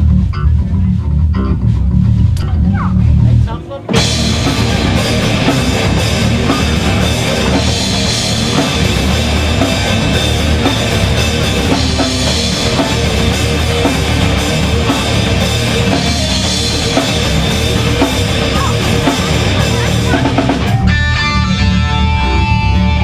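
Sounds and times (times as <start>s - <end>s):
bass-heavy riff: 0.0s - 23.0s
live rock band playing: 0.0s - 23.0s.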